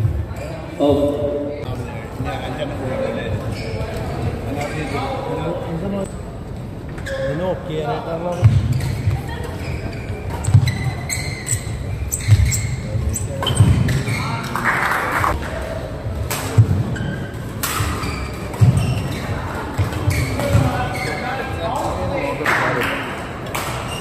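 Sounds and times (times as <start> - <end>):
shoes squeaking: 8.4 - 14.4, 18.0 - 21.5.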